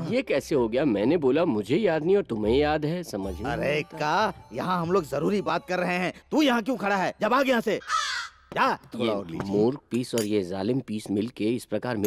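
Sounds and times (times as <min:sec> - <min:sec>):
man speaking: 0:00.0 - 0:07.9, 0:08.5 - 0:12.0.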